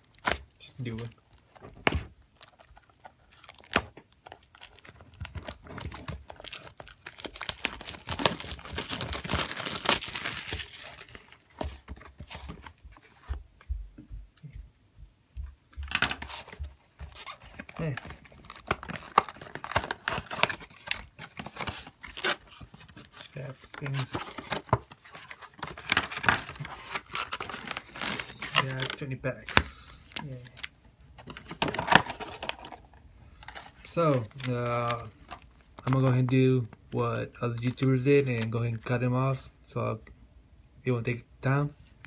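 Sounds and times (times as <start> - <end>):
packaging tearing and crinkling: 0.0 - 11.4, 15.9 - 32.8.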